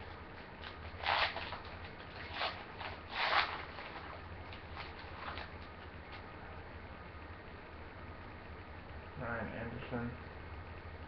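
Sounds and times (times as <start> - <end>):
foil wrapper crinkling and tearing: 0.6 - 5.7.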